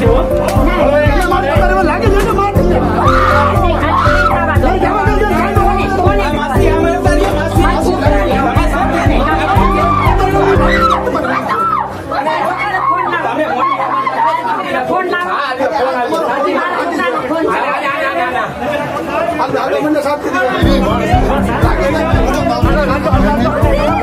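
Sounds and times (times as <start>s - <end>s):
music with steady bass beat: 0.0s - 11.4s, 20.6s - 24.0s
crowd talking and shouting: 0.0s - 24.0s.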